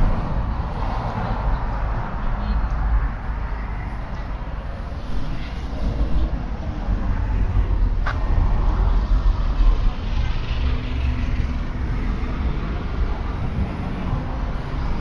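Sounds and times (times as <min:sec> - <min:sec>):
faint voices of passers-by: 0:00.0 - 0:15.0.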